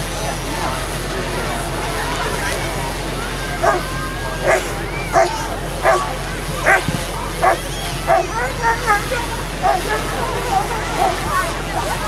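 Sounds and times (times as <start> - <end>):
dog barking: 3.6 - 11.2.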